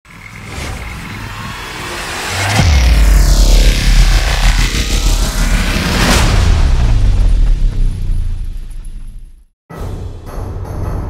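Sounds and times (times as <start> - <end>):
electronic music: 0.1 - 7.1.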